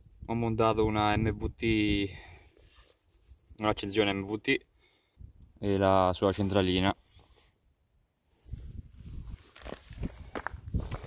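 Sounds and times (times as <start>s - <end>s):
footsteps: 9.1s - 11.0s.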